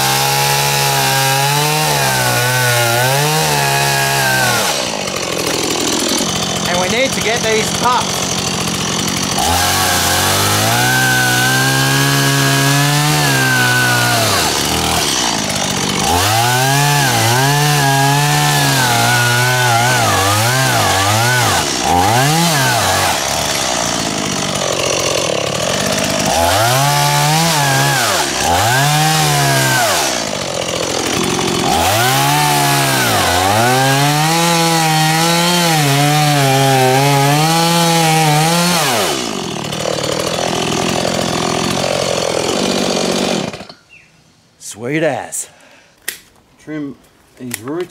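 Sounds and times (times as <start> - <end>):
chainsaw throttle blips: 0.0 - 43.8
chainsaw cutting and idling: 0.0 - 43.9.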